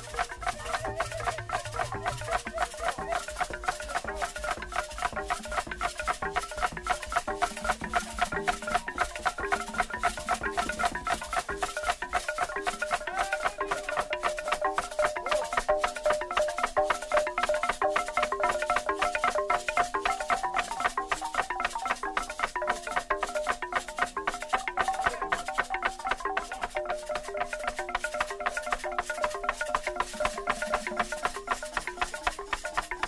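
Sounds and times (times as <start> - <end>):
fast percussion beat: 0.0 - 33.0
shakers: 0.0 - 33.0.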